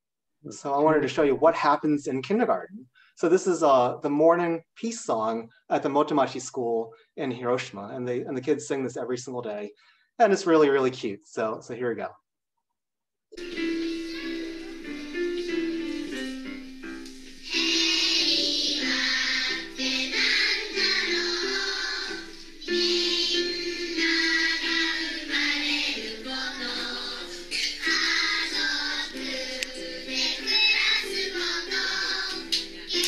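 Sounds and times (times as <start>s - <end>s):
children singing together: 13.4s - 16.5s, 17.4s - 33.0s
upright piano: 13.4s - 33.0s.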